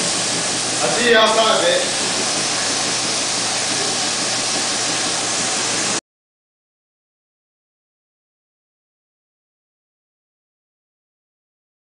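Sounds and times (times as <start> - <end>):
hiss of rushing air: 0.0 - 6.0.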